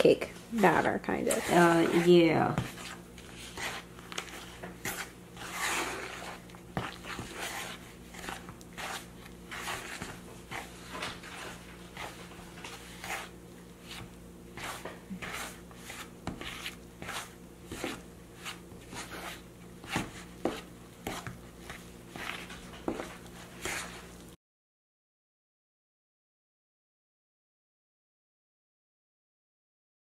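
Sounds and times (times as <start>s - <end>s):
fork scraping batter in bowl: 0.2s - 24.3s.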